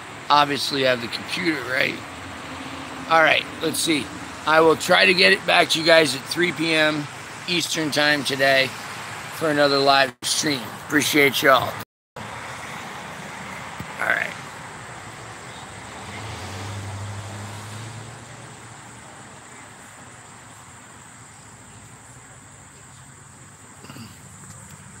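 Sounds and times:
passing vehicle engine hum: 0:00.0 - 0:25.0
road traffic rumble: 0:00.0 - 0:25.0.

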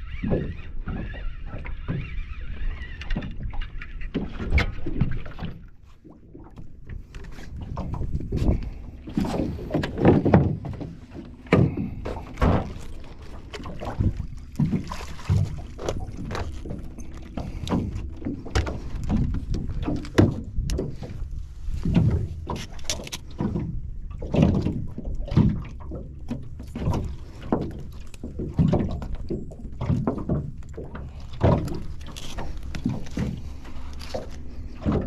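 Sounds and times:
water slapping boat hull: 0:00.0 - 0:35.0.

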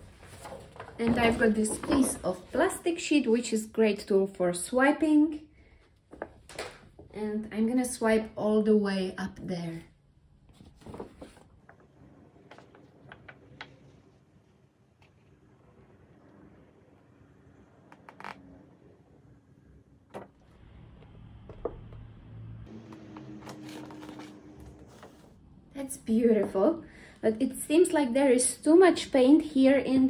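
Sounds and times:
plastic sheet scraping paint: 0:22.9 - 0:25.4.

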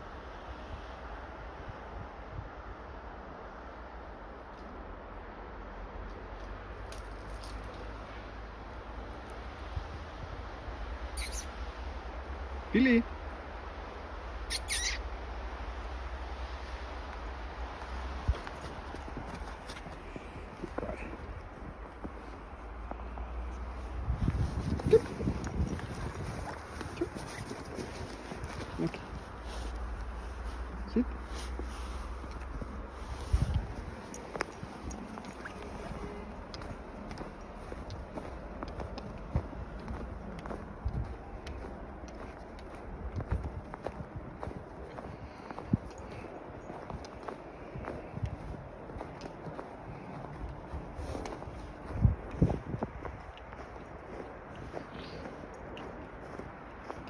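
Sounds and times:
wind rumble on microphone: 0:00.0 - 0:06.8, 0:07.8 - 0:14.4, 0:15.1 - 0:57.0
small bird chirping: 0:11.2 - 0:11.6, 0:14.5 - 0:15.0
footsteps crunching in snow: 0:16.6 - 0:57.0.

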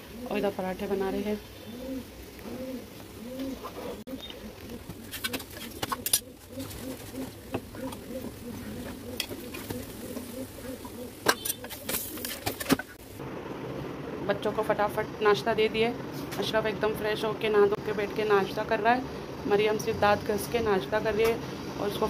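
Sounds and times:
bird cooing: 0:00.0 - 0:00.5, 0:01.6 - 0:13.0.

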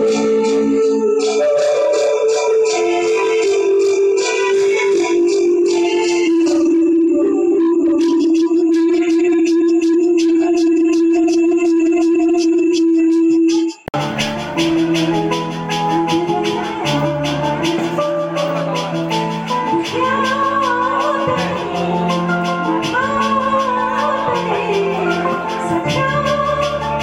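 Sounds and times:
electronic keyboard melody: 0:00.0 - 0:27.0
ticking percussion rhythm: 0:00.0 - 0:27.0.

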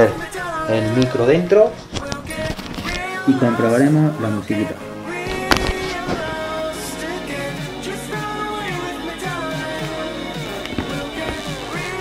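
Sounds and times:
song through helmet speakers: 0:00.0 - 0:12.0.

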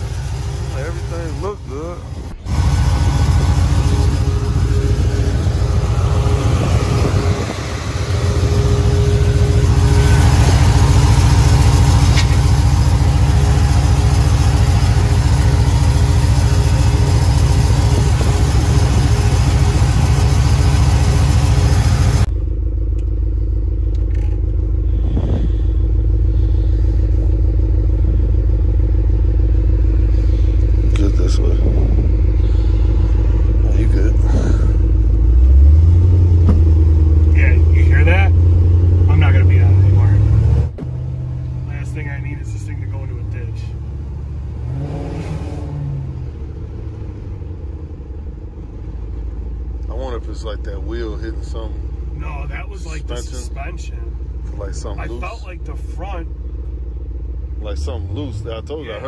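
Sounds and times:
pickup truck engine running: 0:00.0 - 0:45.1, 0:45.7 - 0:59.0
muffled engine rumble inside cab: 0:00.0 - 0:59.0.

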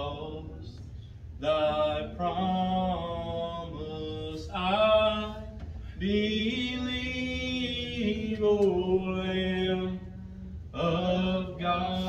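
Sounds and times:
slow hymn music: 0:00.0 - 0:12.0.

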